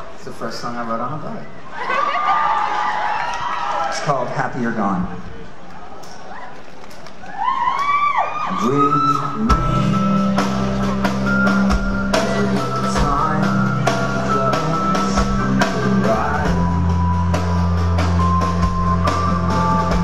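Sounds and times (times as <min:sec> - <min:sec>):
drum kit: 0:08.6 - 0:20.0
sustained bass notes: 0:09.4 - 0:20.0.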